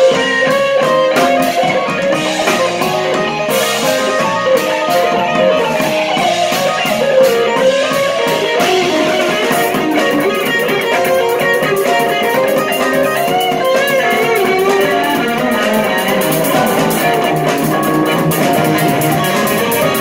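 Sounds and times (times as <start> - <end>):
electric bass: 0.0 - 20.0
electric guitar melody: 0.0 - 20.0
electric keyboard chords: 0.0 - 20.0.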